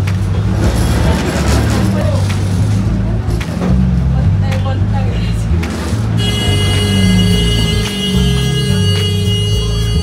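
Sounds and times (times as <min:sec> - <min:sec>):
bus rumbling: 0:00.0 - 0:10.0.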